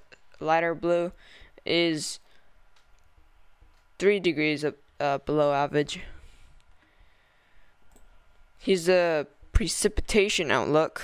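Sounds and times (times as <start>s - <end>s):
person speaking: 0.0s - 2.4s, 3.5s - 6.3s, 8.6s - 11.0s
low room noise: 0.0s - 11.0s
faint clicks: 2.7s - 3.9s.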